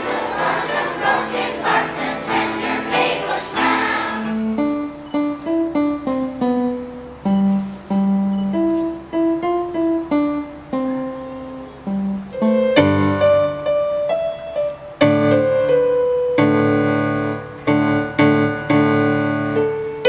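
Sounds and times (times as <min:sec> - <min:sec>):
children's choir singing: 0:00.0 - 0:04.5
electronic keyboard melody: 0:00.0 - 0:20.0.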